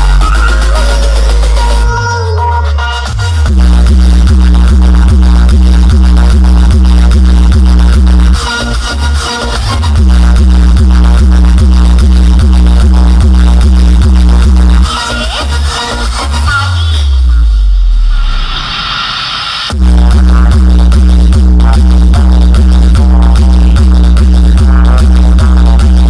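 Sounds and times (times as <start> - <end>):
loud electronic dance music: 0.0 - 26.0.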